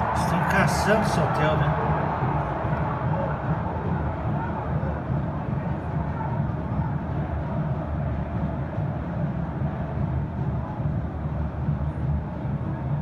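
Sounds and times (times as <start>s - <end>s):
faint crowd murmur: 0.0s - 13.0s
low stadium rumble: 0.0s - 13.0s.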